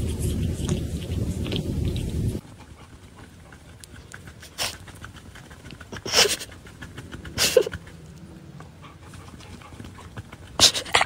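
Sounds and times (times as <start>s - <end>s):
dog panting softly: 0.0s - 11.0s
dog breathy huff: 4.2s - 8.0s, 8.8s - 11.0s.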